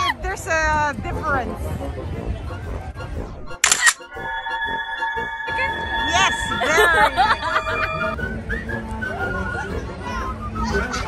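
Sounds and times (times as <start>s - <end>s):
crowd talking: 5.4s - 11.0s.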